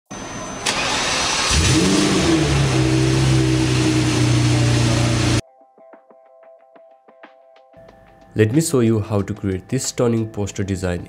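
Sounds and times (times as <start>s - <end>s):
car engine starting and idling: 0.6s - 5.4s.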